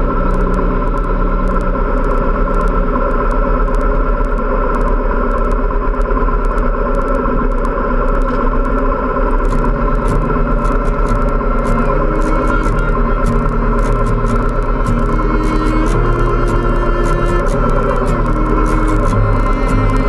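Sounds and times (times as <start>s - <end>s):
wind noise on microphone: 0.0s - 20.0s
motorcycle engines: 9.4s - 20.0s
music with stepping bass line: 9.5s - 20.0s.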